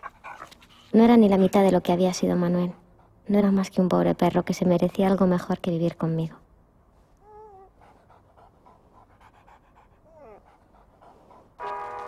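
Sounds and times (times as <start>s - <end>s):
dog panting: 0.0s - 3.8s, 7.0s - 12.0s.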